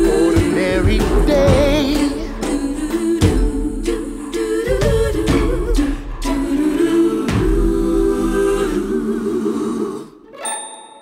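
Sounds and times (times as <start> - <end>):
bright bell-like ding: 10.4 - 11.0.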